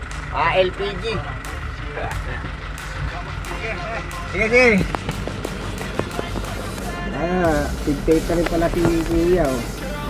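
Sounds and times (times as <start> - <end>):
vehicle engine and road rumble: 0.0 - 10.0.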